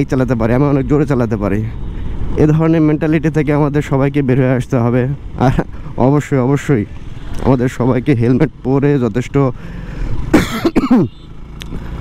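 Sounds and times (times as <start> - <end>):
motorcycle rumbling: 0.0 - 12.0
person coughing: 10.3 - 11.2.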